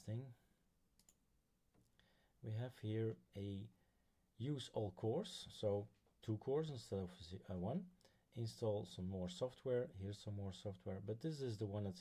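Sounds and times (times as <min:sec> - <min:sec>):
faint computer mouse click: 0:01.0 - 0:01.2.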